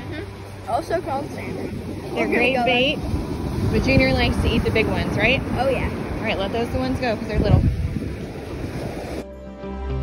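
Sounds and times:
surf: 0.0 - 10.0
wind: 0.0 - 10.0.

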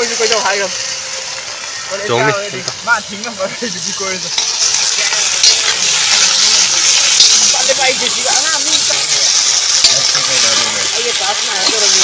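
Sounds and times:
meat sizzling in a wok: 0.0 - 12.0
metal ladle scraping wok: 3.7 - 12.0.

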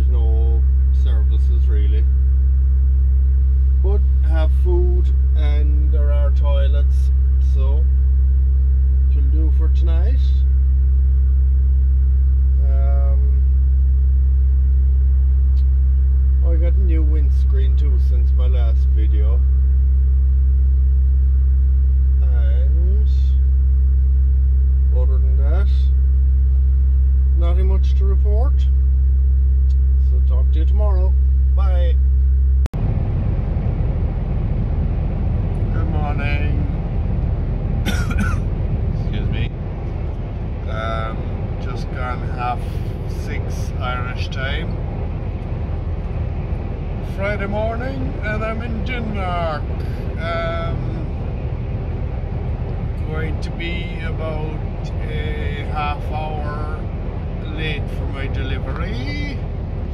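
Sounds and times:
man talking: 0.0 - 2.2, 3.8 - 7.9, 9.0 - 10.5, 12.5 - 13.5, 16.4 - 19.4, 22.2 - 23.5, 24.9 - 26.0, 27.3 - 28.8, 30.0 - 32.0, 35.7 - 36.8, 37.9 - 38.4, 39.0 - 39.5, 40.6 - 44.8, 47.0 - 51.3, 53.0 - 59.5
lorry driving road noise: 0.0 - 20.2, 32.8 - 59.9
fridge unit droning: 0.0 - 59.9.

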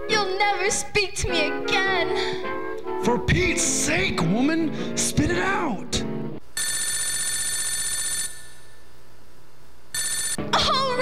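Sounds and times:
telephone ringing: 6.6 - 8.8, 10.0 - 10.4.

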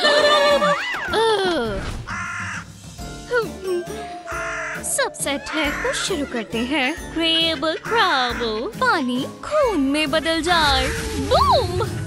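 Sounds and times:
crow caw: 2.1 - 2.7, 4.3 - 4.9.

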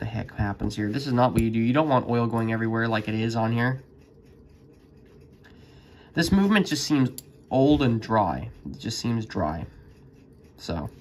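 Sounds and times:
wire oiler scratching watch movement: 0.0 - 11.0.

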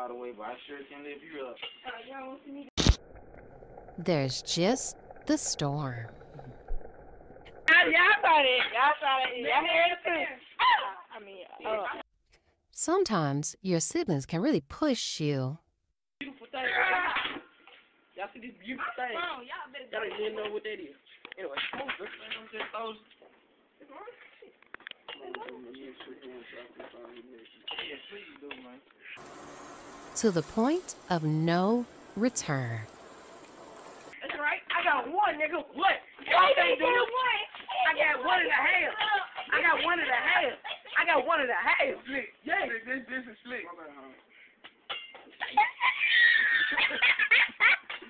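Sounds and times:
person speaking excitedly: 4.0 - 6.0, 12.8 - 15.6, 30.2 - 32.9
steady hiss: 29.2 - 31.1, 32.9 - 34.2
faint low background noise: 29.2 - 34.2.

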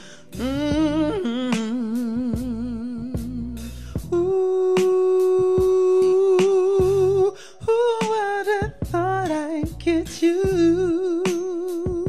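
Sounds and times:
man singing wordlessly: 0.3 - 12.0.

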